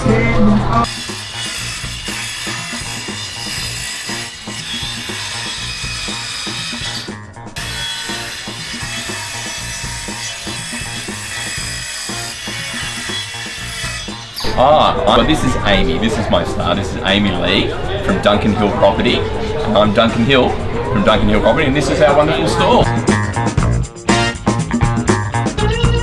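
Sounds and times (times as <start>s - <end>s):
circular saw cutting wood: 0.8s - 15.6s
background music with steady beat: 13.8s - 26.0s.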